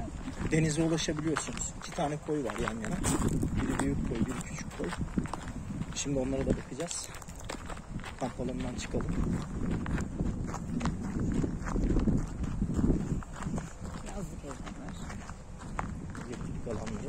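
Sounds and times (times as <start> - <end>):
footsteps on gravel: 0.0 - 17.0.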